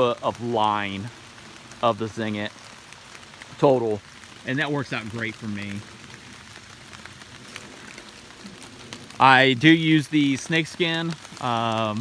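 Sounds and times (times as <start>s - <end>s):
light rain falling: 0.0s - 12.0s
rain drop ticks: 0.0s - 12.0s.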